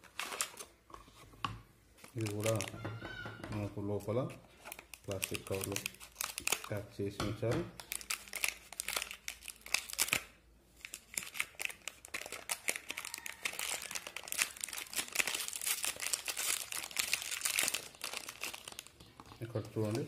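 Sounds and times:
plastic pouch crinkling: 0:00.0 - 0:00.9, 0:02.0 - 0:02.8, 0:03.8 - 0:07.0, 0:07.7 - 0:20.0.

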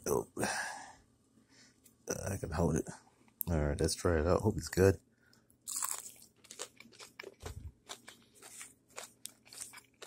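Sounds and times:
crunchy chewing: 0:05.6 - 0:10.0
biting crispy fried fish: 0:05.7 - 0:10.0.

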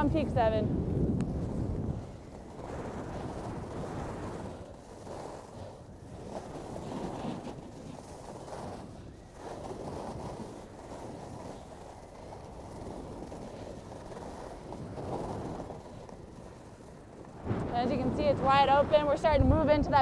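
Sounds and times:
skis hissing over snow: 0:00.0 - 0:19.7
wind rushing over microphone: 0:00.0 - 0:20.0.

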